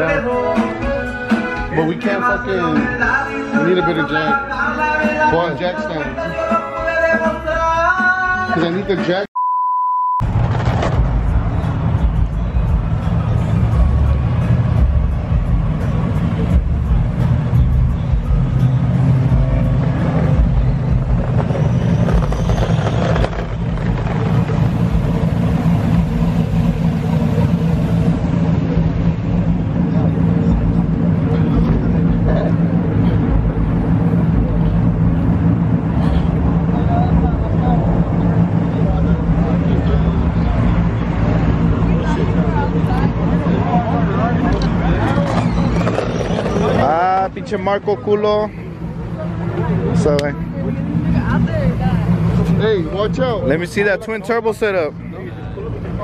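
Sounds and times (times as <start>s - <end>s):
idling vehicle engines rumble: 0.0s - 9.2s, 10.2s - 56.0s
censor bleep: 9.4s - 10.2s.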